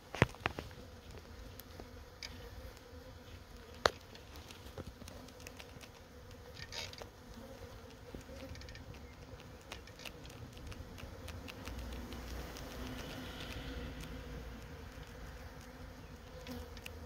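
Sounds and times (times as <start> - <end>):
bee swarm buzzing: 0.0 - 17.0
faint ticks: 0.1 - 2.9, 3.5 - 17.0.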